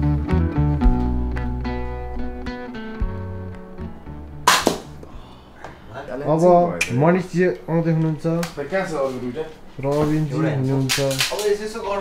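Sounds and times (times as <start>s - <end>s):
guitar music: 0.0s - 5.4s.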